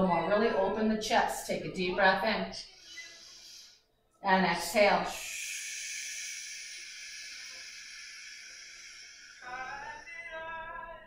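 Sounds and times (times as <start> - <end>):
slow breathy exhale: 2.6 - 3.8, 5.1 - 10.1.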